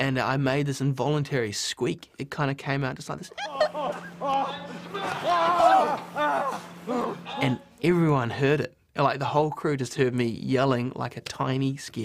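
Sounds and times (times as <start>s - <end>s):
steady low hum: 3.3s - 8.6s.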